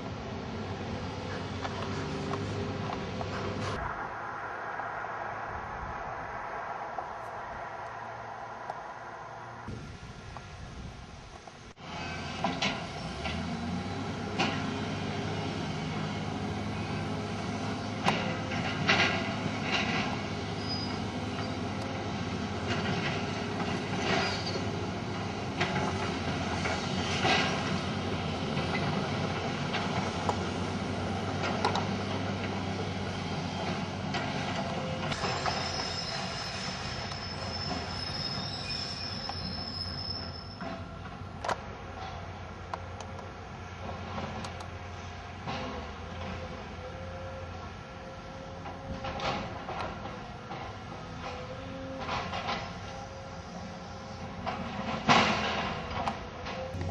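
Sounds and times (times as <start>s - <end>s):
thin high squeal: 35.2s - 40.9s
diesel engine running: 55.5s - 56.9s.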